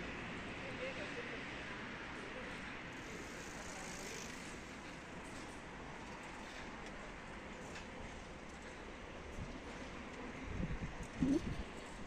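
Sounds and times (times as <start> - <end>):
distant traffic hum: 0.0 - 12.0.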